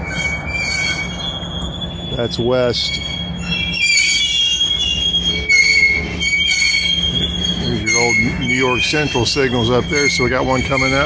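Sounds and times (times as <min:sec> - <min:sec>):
low rumble of train: 0:00.0 - 0:11.0
train wheels squealing on rails: 0:00.0 - 0:11.0.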